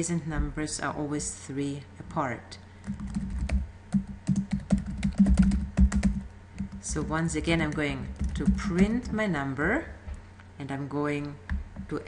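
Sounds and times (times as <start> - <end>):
computer keyboard typing: 2.8 - 9.2.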